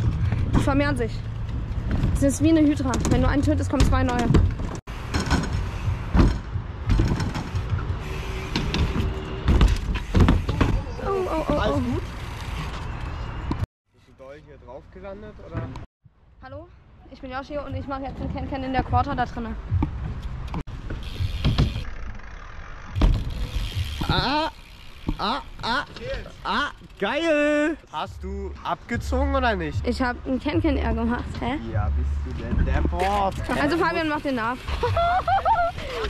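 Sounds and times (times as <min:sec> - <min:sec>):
bike tyres rolling on concrete: 0:00.0 - 0:13.6, 0:17.9 - 0:27.8, 0:32.4 - 0:36.0
wheels thudding on ramps: 0:01.5 - 0:12.0, 0:19.7 - 0:22.2, 0:22.8 - 0:26.3.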